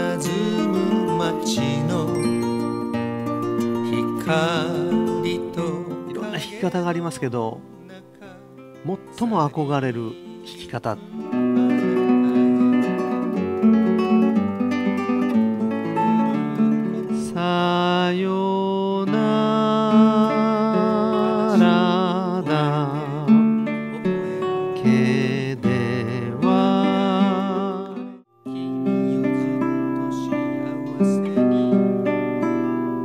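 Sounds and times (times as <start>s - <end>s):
wavering melody with vibrato: 0.0s - 6.8s
fingerpicked classical guitar: 0.0s - 33.0s.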